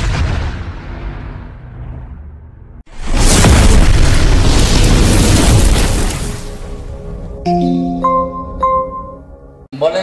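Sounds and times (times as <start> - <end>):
loud explosion sound effect: 0.0 - 7.3
background music: 6.6 - 10.0.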